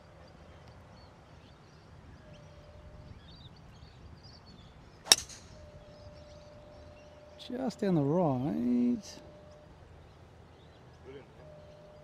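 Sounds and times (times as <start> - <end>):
birdsong chirps: 0.0 - 12.0
golf club striking ball: 5.0 - 5.7.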